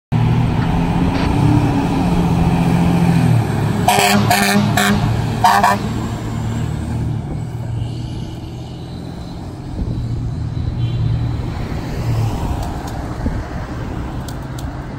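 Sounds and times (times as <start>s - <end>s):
car passing: 0.2s - 14.9s.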